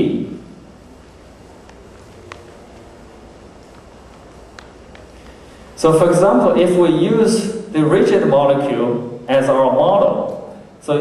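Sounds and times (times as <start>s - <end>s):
low steady hiss: 0.0s - 11.0s.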